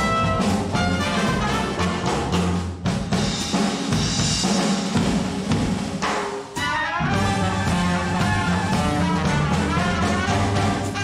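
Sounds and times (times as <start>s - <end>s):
jazz band with brass: 0.0s - 5.8s, 6.5s - 11.0s
drum kit break: 0.0s - 11.0s.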